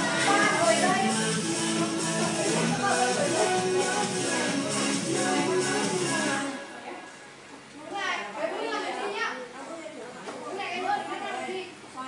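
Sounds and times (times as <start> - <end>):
children talking: 0.0 - 4.1, 7.8 - 12.0.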